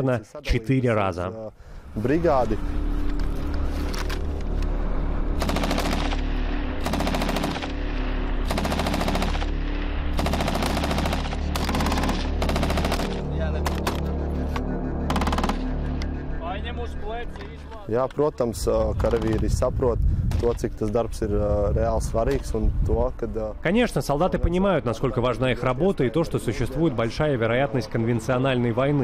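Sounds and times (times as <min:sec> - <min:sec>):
automatic rifle bursts: 0:10.2 - 0:14.0, 0:15.1 - 0:15.6.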